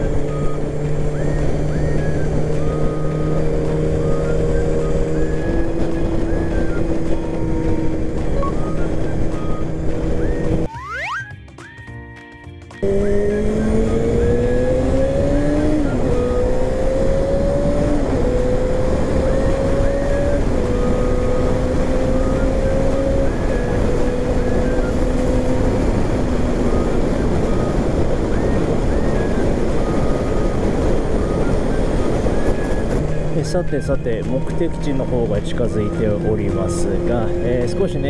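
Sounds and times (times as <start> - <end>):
motorcycle engine revving: 0.0 - 10.7, 12.8 - 38.0
wind and road noise: 0.0 - 11.2, 12.8 - 38.0.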